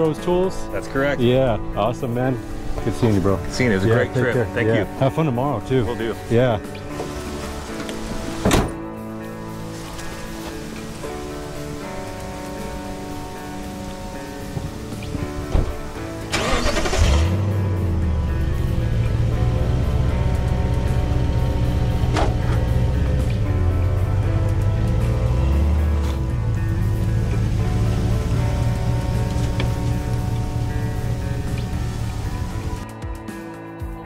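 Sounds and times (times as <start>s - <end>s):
background music: 0.0s - 34.0s
truck engine starting and running: 5.6s - 32.8s
car door thumping shut: 8.3s - 8.8s, 15.5s - 15.8s.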